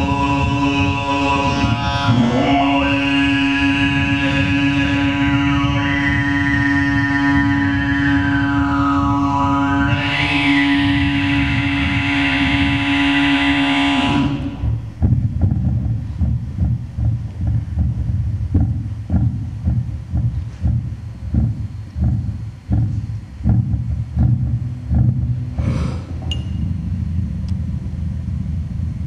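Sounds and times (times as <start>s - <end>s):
amplified heartbeat thumps: 0.0s - 29.0s
throat-singing drone: 0.0s - 29.0s.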